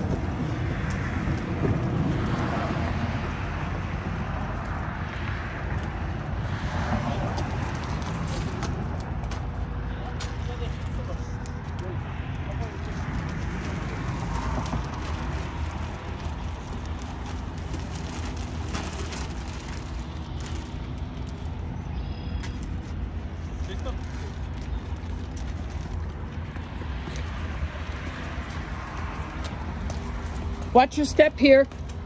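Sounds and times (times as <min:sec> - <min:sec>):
heavy low rumble: 0:00.0 - 0:30.8.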